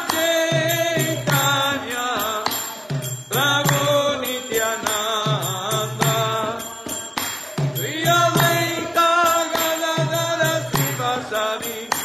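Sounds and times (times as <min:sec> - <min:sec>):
jingling percussion: 0:00.0 - 0:12.0
voices singing a chant: 0:00.0 - 0:12.0.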